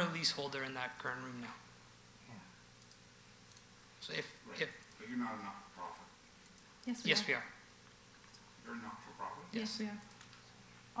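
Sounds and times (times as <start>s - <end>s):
faint clicks: 2.8s - 3.7s, 10.0s - 10.5s.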